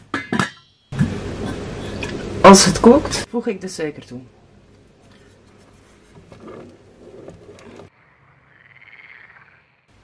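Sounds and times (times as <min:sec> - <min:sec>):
pot lid clanking against pot: 0:00.1 - 0:02.2.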